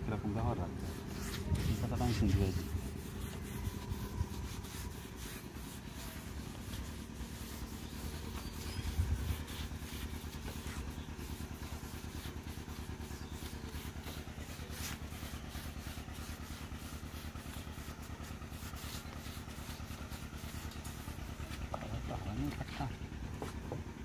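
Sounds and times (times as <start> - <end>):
motor running with regular pulse: 0.0 - 24.0.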